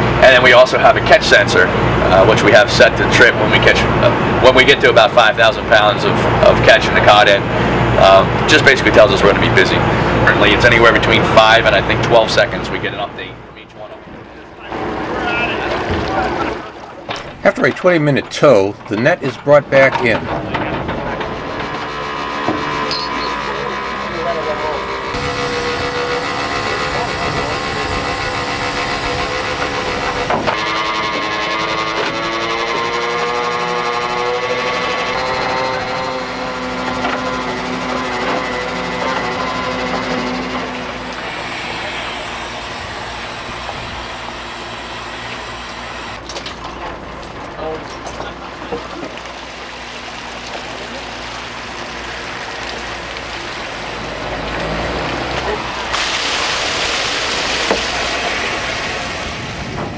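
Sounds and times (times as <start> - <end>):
boat engine and winch rumble: 0.0 - 59.9
water streaming off net: 48.8 - 59.9.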